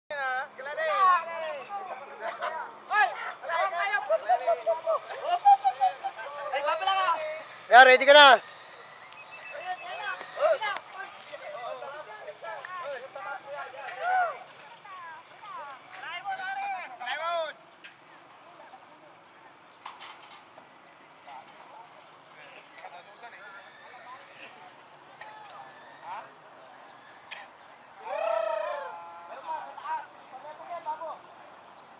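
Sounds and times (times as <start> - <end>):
people talking and calling out: 0.1 - 31.9
distant voices: 0.2 - 31.9.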